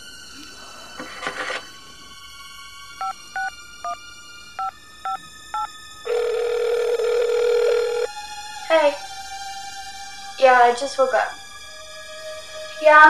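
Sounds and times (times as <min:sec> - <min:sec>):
phone ringback tone: 0:03.0 - 0:03.5, 0:04.6 - 0:08.1
phone keypad beeps: 0:04.6 - 0:08.1.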